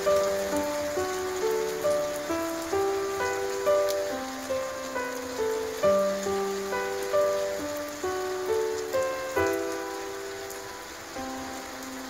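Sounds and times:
heavy rain falling: 0.0 - 12.0
soft melodic background music: 0.0 - 12.0.

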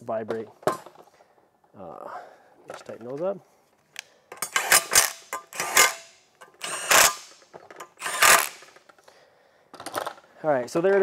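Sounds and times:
ratchet clicking: 4.3 - 8.8.

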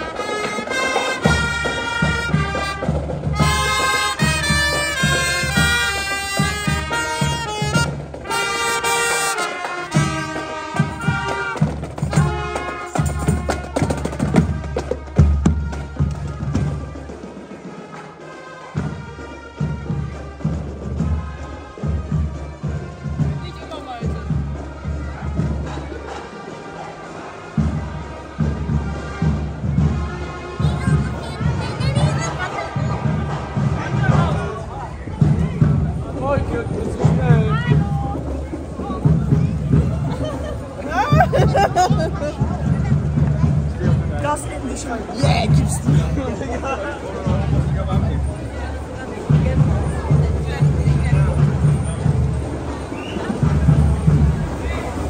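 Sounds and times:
steady drumbeat: 0.0 - 55.0
wind instruments melody: 0.0 - 55.0.

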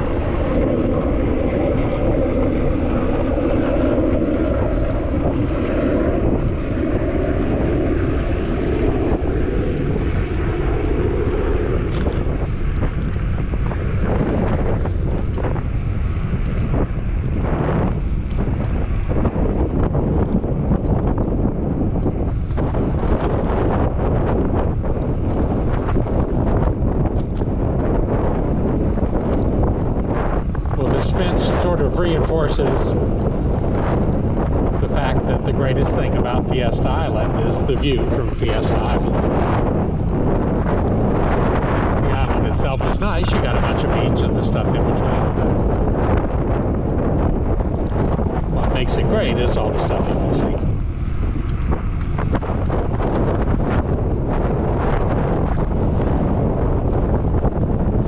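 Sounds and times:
small aircraft droning overhead: 0.0 - 58.0
wind buffeting microphone: 0.0 - 58.0.

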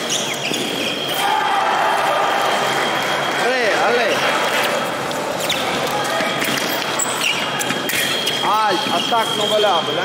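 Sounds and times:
chatter in sports hall: 0.0 - 10.0.

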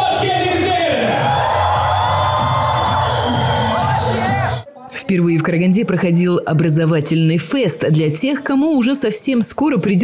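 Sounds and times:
crowd cheering and shouting: 0.0 - 4.7
loud music in a hall: 0.0 - 4.7.

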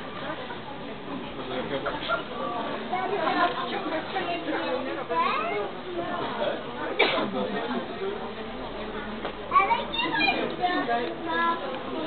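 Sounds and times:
indistinct chatter of onlookers: 0.0 - 12.0
children's voices: 5.1 - 6.2, 9.5 - 12.0.

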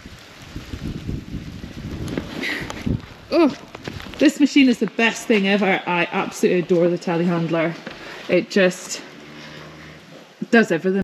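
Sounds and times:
wind buffeting microphone: 0.0 - 10.5.

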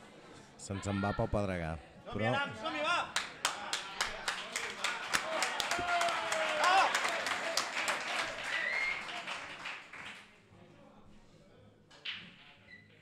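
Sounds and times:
audience clapping: 3.1 - 10.4.

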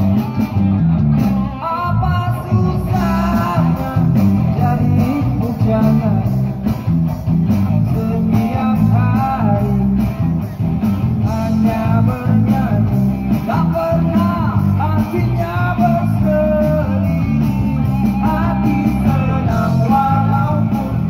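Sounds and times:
drums keeping a steady beat: 0.0 - 21.0
electric guitar: 0.0 - 21.0
heavy bass line: 0.0 - 21.0
man singing: 1.5 - 6.7, 7.6 - 21.0.

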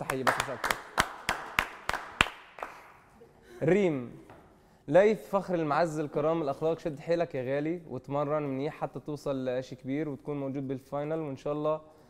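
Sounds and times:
hand clapping: 0.0 - 3.1.

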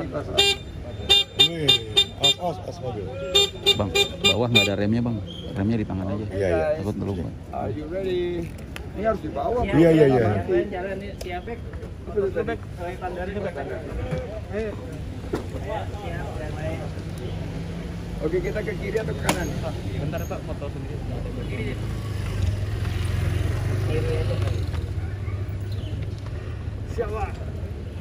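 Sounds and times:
vehicle engine humming: 0.0 - 5.0.

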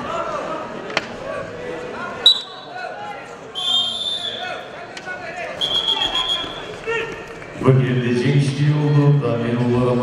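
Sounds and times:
voices echoing in a hall: 0.0 - 10.0
referee's whistle blast: 2.3 - 2.7, 3.6 - 4.6, 5.6 - 6.7.

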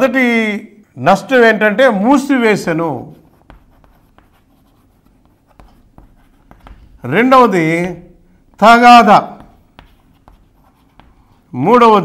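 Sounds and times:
man speaking: 0.0 - 3.2, 7.0 - 9.6, 11.5 - 12.0
chalk writing on blackboard: 2.9 - 11.6.

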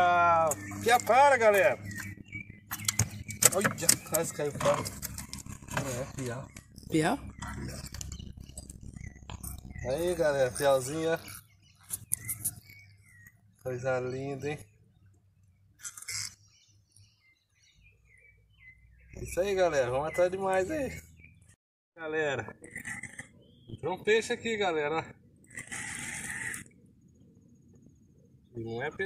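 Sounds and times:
bird chirping: 0.0 - 21.6, 22.5 - 29.0.

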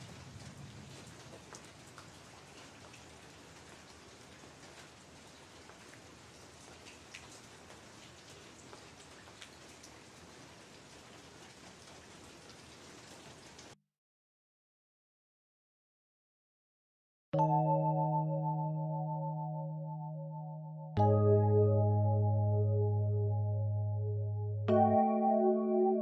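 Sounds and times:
faint steady rain: 0.0 - 13.8
raindrops ticking on surfaces: 0.0 - 13.8.

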